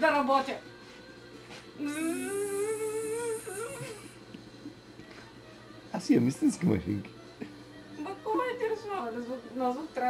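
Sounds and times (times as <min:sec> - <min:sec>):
person humming: 0:01.8 - 0:04.2.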